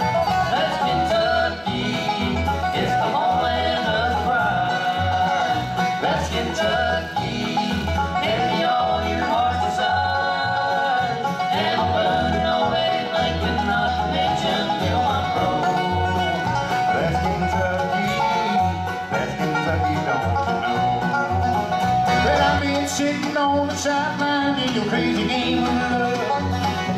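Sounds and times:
acoustic guitar: 0.0s - 26.9s
banjo: 0.0s - 26.9s
mandolin: 0.0s - 26.9s
resonator guitar: 0.0s - 26.9s
upright bass: 0.0s - 26.9s.

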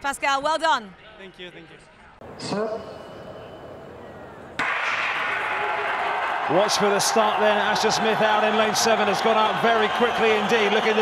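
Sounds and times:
crowd cheering loudly: 3.4s - 11.0s.

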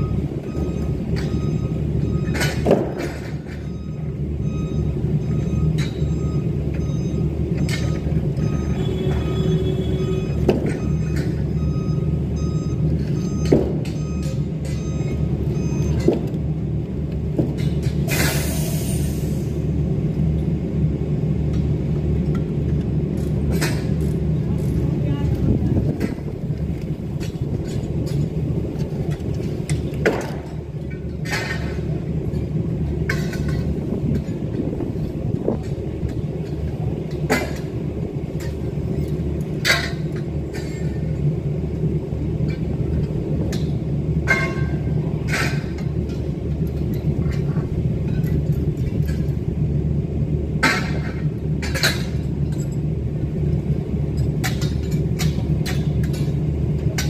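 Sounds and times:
steel scaffold tubes clanking: 25.8s - 41.3s, 42.4s - 49.5s, 50.6s - 52.9s.

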